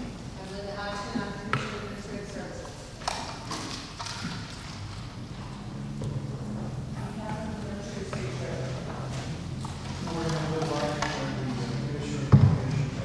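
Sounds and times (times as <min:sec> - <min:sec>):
distant voice speaking in a hall: 0:00.0 - 0:13.0.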